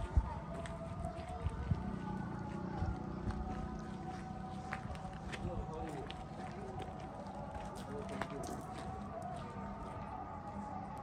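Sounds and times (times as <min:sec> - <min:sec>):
footsteps on gravel: 0:00.0 - 0:10.6
faint voices: 0:00.0 - 0:11.0.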